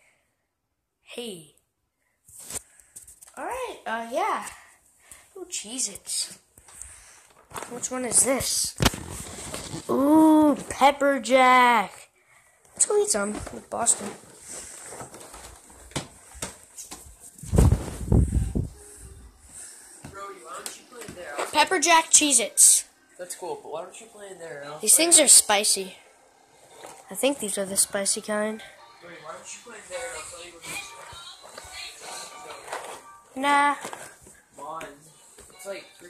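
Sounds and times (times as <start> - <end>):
rubbing rumble on microphone: 17.0 - 18.8
music playing: 27.2 - 36.0.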